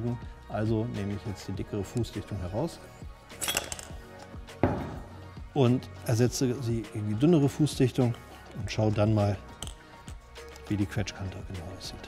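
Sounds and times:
metallic clink and scrape: 3.3 - 4.4
dull knock on wooden bench: 4.6 - 5.1.

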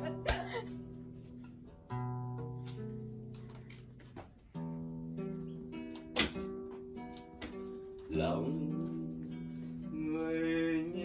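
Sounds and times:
acoustic guitar played slowly: 0.0 - 11.0.

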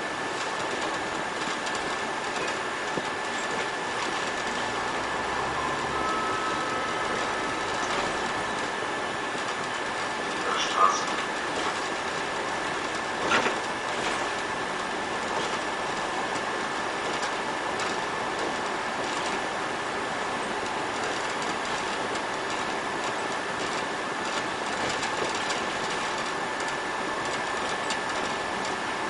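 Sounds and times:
bus road noise hiss: 0.0 - 29.0
constant high whine: 0.0 - 29.0.

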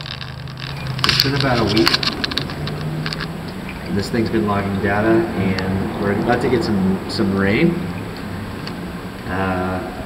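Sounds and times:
hands handling cables clicking: 0.0 - 3.8.

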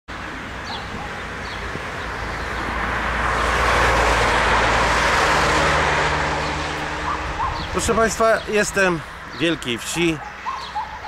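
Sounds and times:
car driving by: 2.1 - 9.4.

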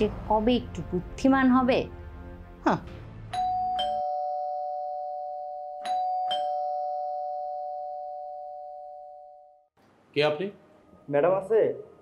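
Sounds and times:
doorbell ding-dong chime: 3.3 - 9.6.

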